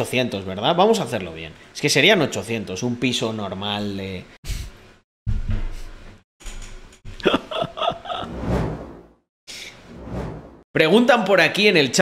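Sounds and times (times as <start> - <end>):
man laughing: 7.2 - 8.3.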